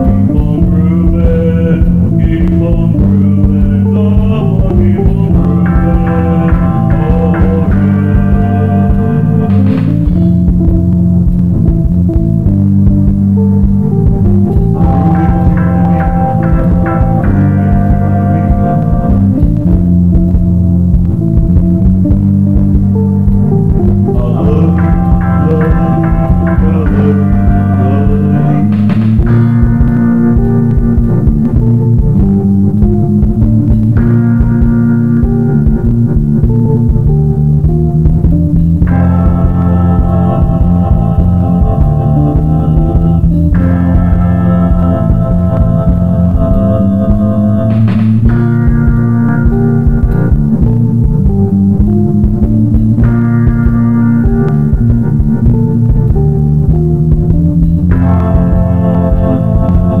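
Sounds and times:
bass: 0:00.0 - 1:00.0
electric guitar: 0:00.0 - 1:00.0
held organ chords: 0:00.0 - 1:00.0
steady low pulse: 0:00.0 - 1:00.0.

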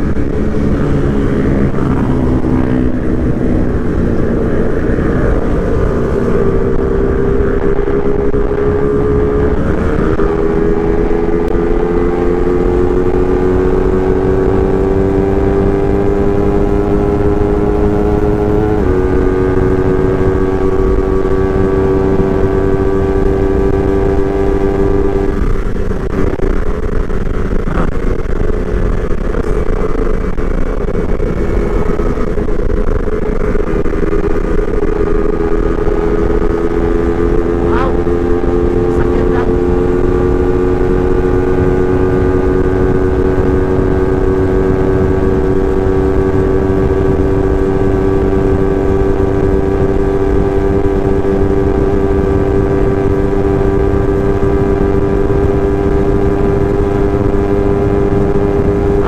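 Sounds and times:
motorcycle engine accelerating: 0:00.0 - 0:59.0
wind rushing over microphone: 0:00.0 - 0:59.0.

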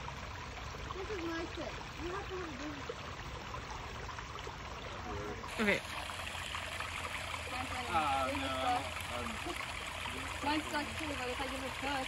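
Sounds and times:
stream trickling over rock: 0:00.0 - 0:12.0.

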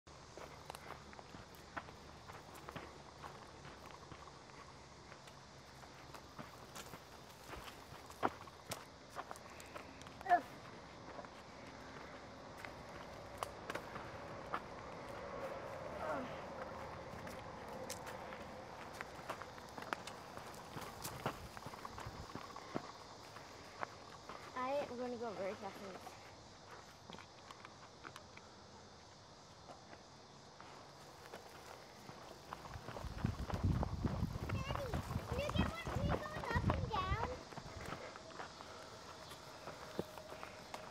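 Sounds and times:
running footsteps on dirt: 0:00.1 - 0:28.2, 0:29.6 - 0:40.9
faint steady tone: 0:35.4 - 0:40.9.

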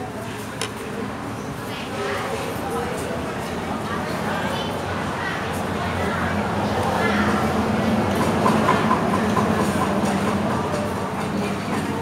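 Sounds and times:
diners' voices: 0:00.0 - 0:12.0.

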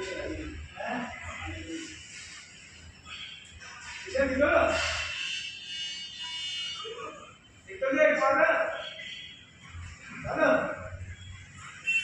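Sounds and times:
high-pitched buzzing tone: 0:00.0 - 0:07.5.

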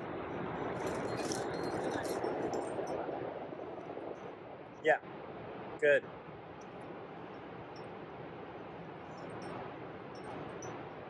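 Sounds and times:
faint metallic clinks: 0:00.6 - 0:04.3, 0:06.6 - 0:11.0.

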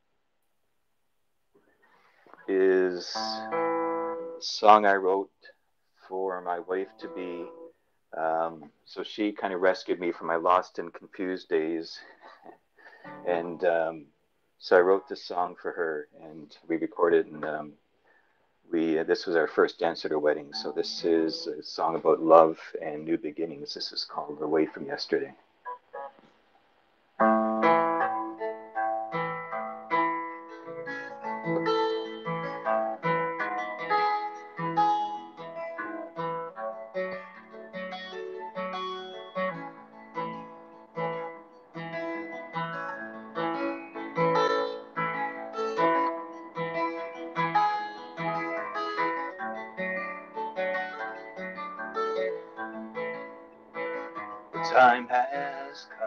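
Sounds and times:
acoustic guitar picking: 0:02.2 - 0:05.2, 0:06.3 - 0:07.8, 0:27.2 - 0:56.0.

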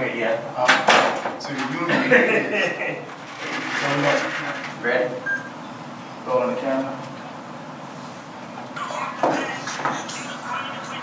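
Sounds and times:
indistinct voices: 0:08.7 - 0:11.0.

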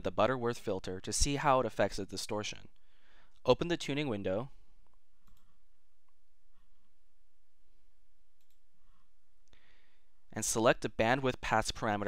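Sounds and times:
computer mouse clicks: 0:04.8 - 0:06.2, 0:08.4 - 0:08.6.

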